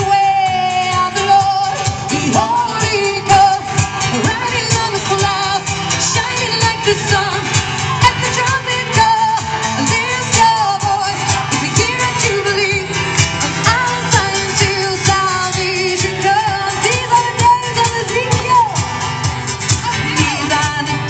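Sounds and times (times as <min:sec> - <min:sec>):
backing track with steady beat: 0:00.0 - 0:21.0
woman singing into a microphone: 0:00.0 - 0:21.0.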